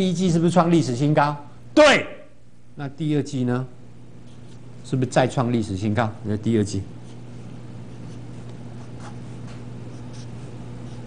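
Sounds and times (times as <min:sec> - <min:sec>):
low electrical hum: 0:00.0 - 0:11.0
marker pen drawing on paper: 0:07.9 - 0:11.0.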